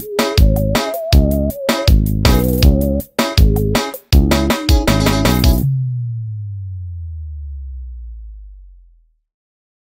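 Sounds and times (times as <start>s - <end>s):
low bass note: 5.0s - 9.2s.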